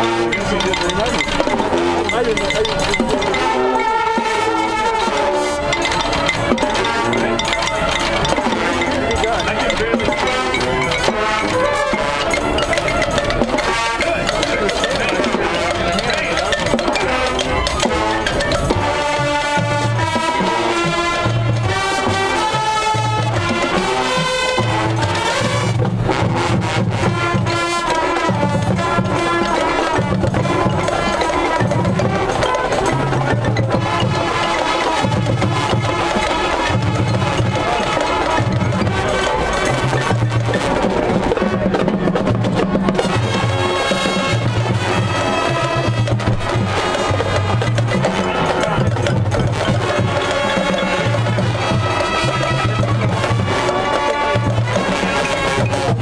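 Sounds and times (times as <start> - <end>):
marching band playing: 0.0 - 56.0
sharp percussion strokes: 0.0 - 56.0.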